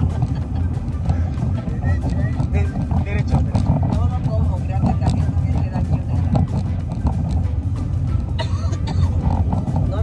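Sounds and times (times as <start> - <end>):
people talking and laughing: 0.0 - 10.0
road and engine noise: 0.0 - 10.0.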